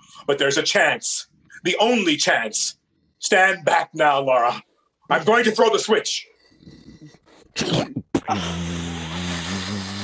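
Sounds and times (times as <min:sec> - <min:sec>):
low mechanical drone: 0:08.3 - 0:10.0.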